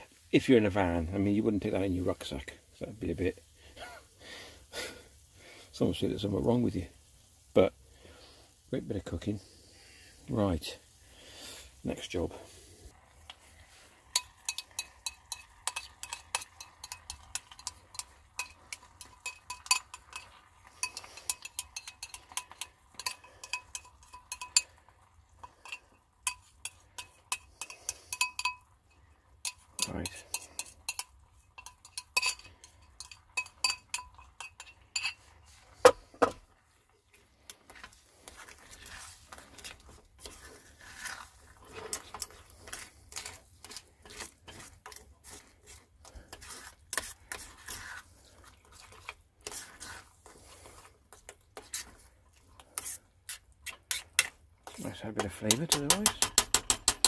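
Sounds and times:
spoon stirring rice in pan: 0.1s - 57.0s
metal spoon clinking on pots: 14.0s - 36.4s, 41.5s - 48.0s, 52.6s - 57.0s.

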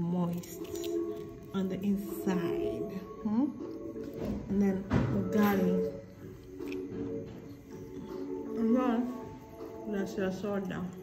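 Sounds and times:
background music with low notes: 0.0s - 11.0s.

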